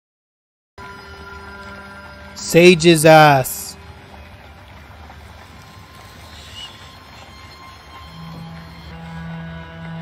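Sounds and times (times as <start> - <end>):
low rumbling drone: 0.8 - 2.9, 3.6 - 10.0.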